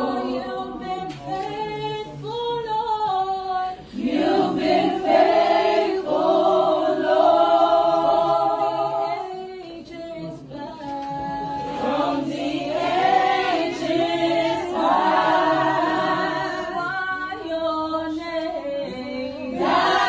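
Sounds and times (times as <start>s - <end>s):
women singing unaccompanied: 0.0s - 20.0s.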